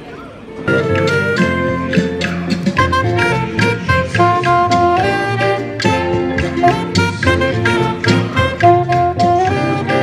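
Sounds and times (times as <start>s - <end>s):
saxophone jazz melody: 0.5s - 10.0s
walking bass line: 0.6s - 10.0s
drums: 0.7s - 10.0s.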